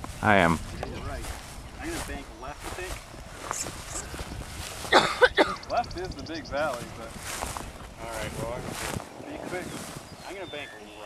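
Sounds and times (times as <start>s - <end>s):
wind rumbling on microphone: 0.0s - 11.0s
faint voices: 0.2s - 7.4s.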